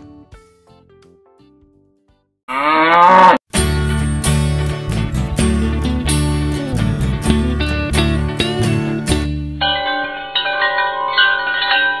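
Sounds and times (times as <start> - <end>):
chimes ringing: 9.6 - 12.0.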